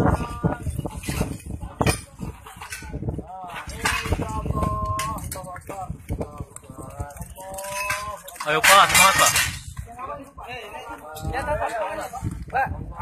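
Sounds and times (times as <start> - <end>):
voices calling out: 0.0 - 12.2
masonry debris knocking: 7.2 - 9.9.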